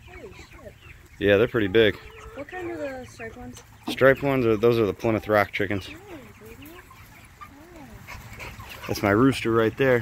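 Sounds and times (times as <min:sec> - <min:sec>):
faint yard noise: 0:00.0 - 0:10.0.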